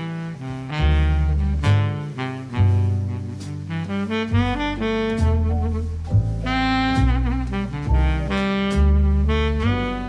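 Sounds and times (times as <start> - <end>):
slow instrumental jazz: 0.0 - 10.0.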